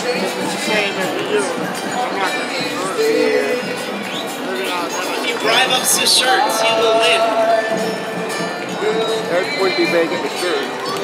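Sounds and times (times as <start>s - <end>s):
music playing: 0.0s - 11.0s
people talking: 0.0s - 11.0s.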